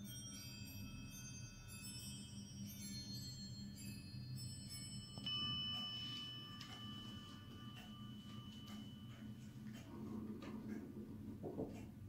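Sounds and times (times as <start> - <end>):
clock chime bell: 0.0 - 10.7
clock ticking: 5.3 - 12.0.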